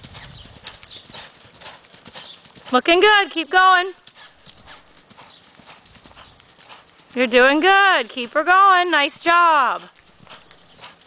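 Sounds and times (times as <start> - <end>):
horse hoofbeats on dirt: 0.0 - 11.0.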